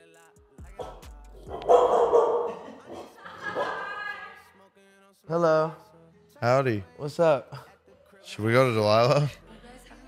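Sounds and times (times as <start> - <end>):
dog barking: 0.8 - 4.0.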